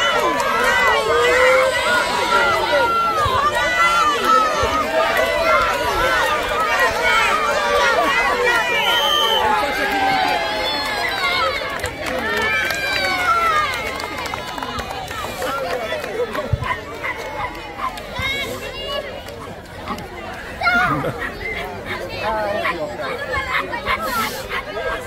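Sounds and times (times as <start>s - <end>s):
crowd shouting and cheering: 0.0s - 25.0s.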